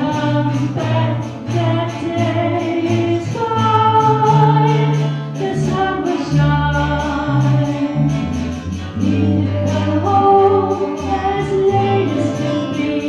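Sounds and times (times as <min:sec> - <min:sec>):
steady bass line: 0:00.0 - 0:13.0
strummed acoustic guitars: 0:00.0 - 0:13.0
voices singing together: 0:00.0 - 0:13.0.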